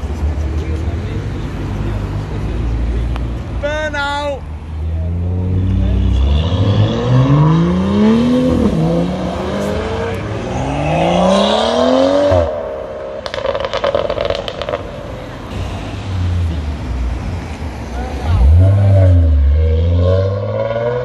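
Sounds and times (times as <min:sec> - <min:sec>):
car engine revving: 0:04.9 - 0:21.0.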